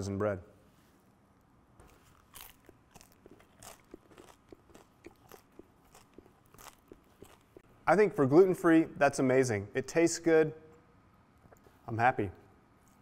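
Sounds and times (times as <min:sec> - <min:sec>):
bread crust crunching: 0:01.8 - 0:07.7
chewing crunches: 0:01.8 - 0:07.7.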